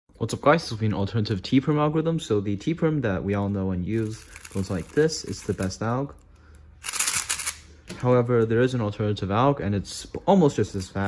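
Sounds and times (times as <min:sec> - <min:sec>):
puzzle cube clicking and rattling: 0:03.9 - 0:05.8, 0:06.8 - 0:07.6.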